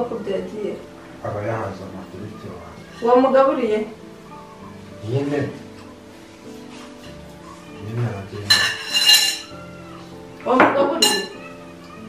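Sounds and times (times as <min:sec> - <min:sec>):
quiet background music: 0:00.0 - 0:12.0
dishes and cutlery clattering: 0:06.6 - 0:09.8, 0:10.5 - 0:12.0.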